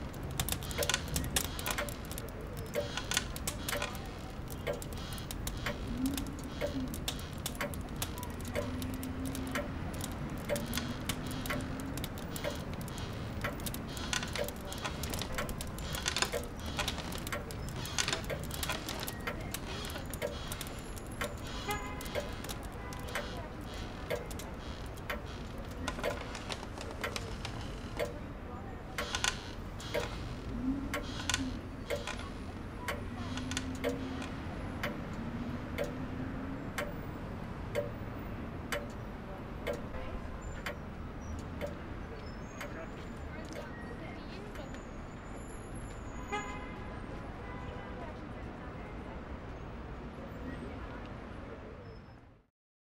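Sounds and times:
clock ticking: 0.0s - 28.3s, 28.9s - 36.2s, 37.7s - 40.0s, 40.6s - 41.9s.

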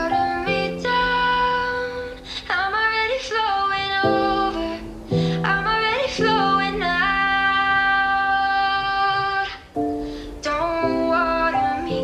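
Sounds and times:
high singing voice: 0.0s - 12.0s.

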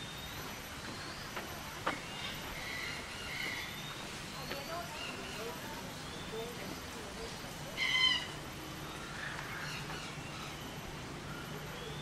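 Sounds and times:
faint bird chirping: 0.0s - 12.0s.

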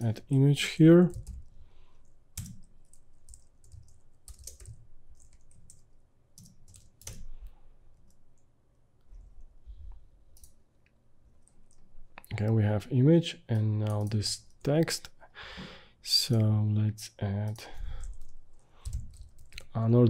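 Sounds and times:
computer keyboard typing: 1.1s - 7.4s, 10.3s - 10.6s, 13.6s - 14.8s, 17.4s - 19.7s.

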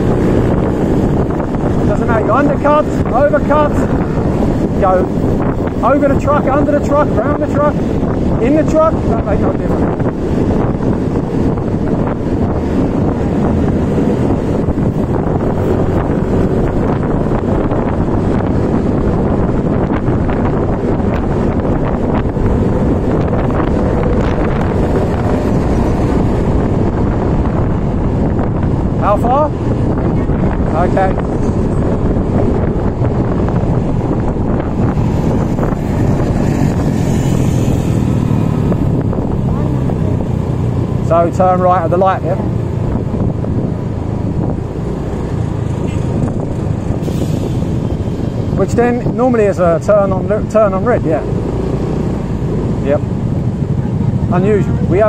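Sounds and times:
road noise: 0.0s - 55.0s
wind buffeting microphone: 0.0s - 55.0s.

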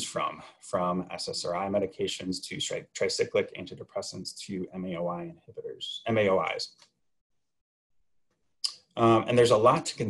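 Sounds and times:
man talking: 0.0s - 6.8s, 8.6s - 10.0s.

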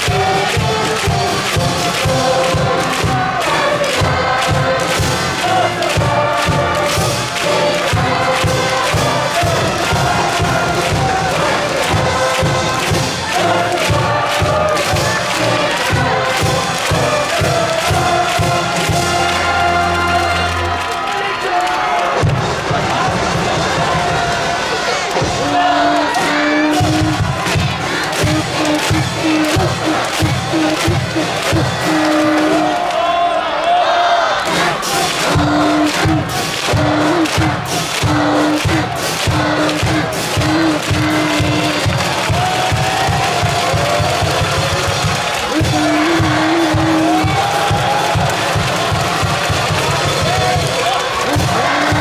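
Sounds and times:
steady drum beat: 0.0s - 20.9s, 25.1s - 32.9s, 34.4s - 52.0s
brass band playing: 0.0s - 33.3s, 34.4s - 52.0s
crowd singing and shouting: 0.0s - 52.0s.

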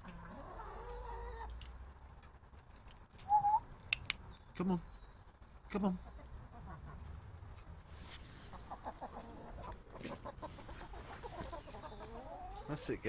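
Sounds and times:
chickens clucking: 0.0s - 2.3s, 3.0s - 4.1s, 5.7s - 7.7s, 8.3s - 13.0s.

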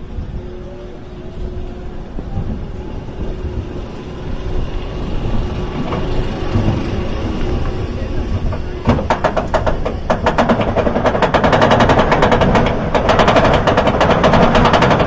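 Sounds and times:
rising whine: 0.0s - 10.7s
roller coaster wheel rumble: 0.0s - 15.0s.

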